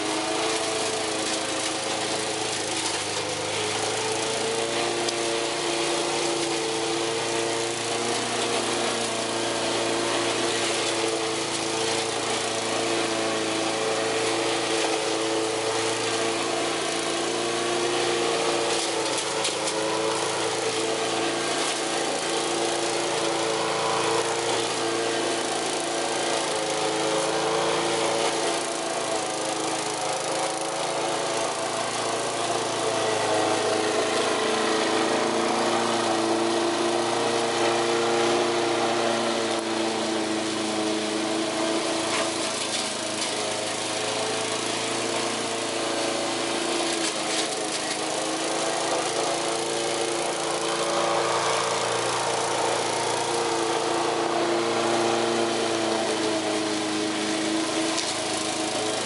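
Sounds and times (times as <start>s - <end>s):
lawn mower mowing grass: 0.0s - 59.0s.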